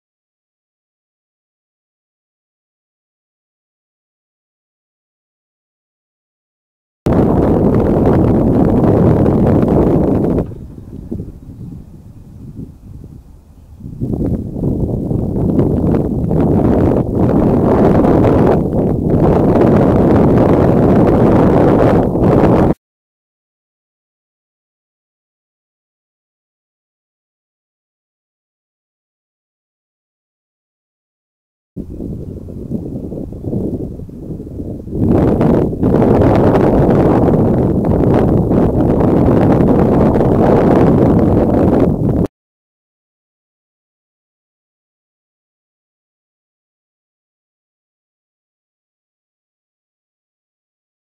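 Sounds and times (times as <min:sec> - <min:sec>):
wind buffeting microphone: 0:07.1 - 0:22.8, 0:31.8 - 0:42.3.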